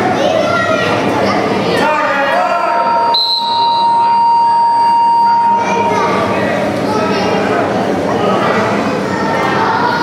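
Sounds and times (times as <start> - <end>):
scoreboard buzzer long tone: 2.8 - 6.0.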